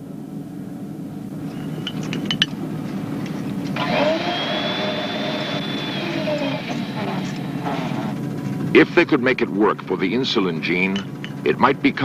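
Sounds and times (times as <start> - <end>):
low steady hum: 0.0 - 12.0
rushing motor-like noise: 1.5 - 9.9.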